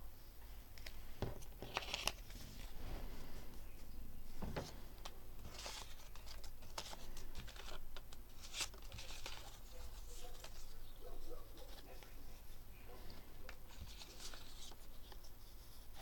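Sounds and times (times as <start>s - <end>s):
paper rustling and crinkling: 0.8s - 16.0s.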